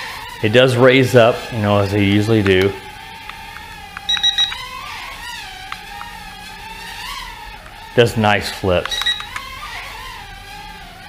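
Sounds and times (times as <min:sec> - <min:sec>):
drone motors whining: 0:00.0 - 0:11.0
short high beeps: 0:04.1 - 0:04.7, 0:08.9 - 0:09.4.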